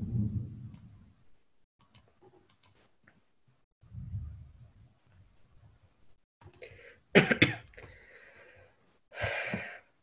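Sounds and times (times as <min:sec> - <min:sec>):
person coughing: 0:07.1 - 0:07.7.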